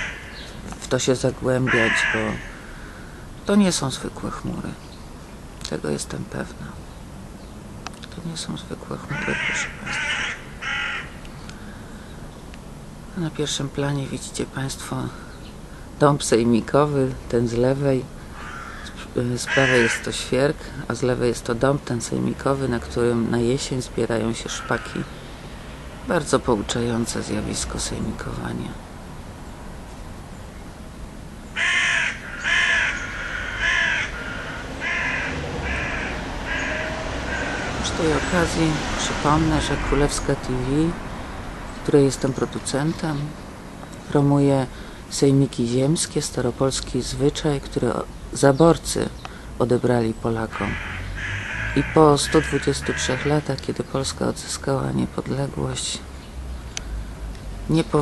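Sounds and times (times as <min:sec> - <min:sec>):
crow cawing: 0:00.0 - 0:00.6, 0:01.6 - 0:03.3, 0:09.1 - 0:11.8, 0:18.2 - 0:20.2, 0:24.5 - 0:25.3, 0:31.6 - 0:38.5, 0:50.5 - 0:53.5
bird calling: 0:00.0 - 0:03.5, 0:09.0 - 0:12.4, 0:18.2 - 0:20.3, 0:31.4 - 0:38.9, 0:50.5 - 0:53.6.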